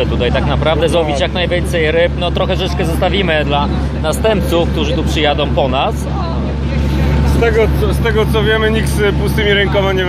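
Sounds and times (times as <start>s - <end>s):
boat engine running: 0.0s - 10.0s
men talking: 0.0s - 10.0s.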